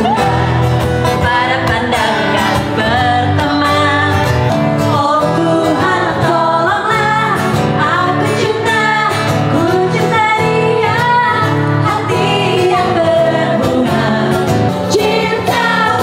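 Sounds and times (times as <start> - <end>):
electric guitar: 0.0 - 16.0
live band playing: 0.0 - 16.0
women singing: 0.0 - 16.0.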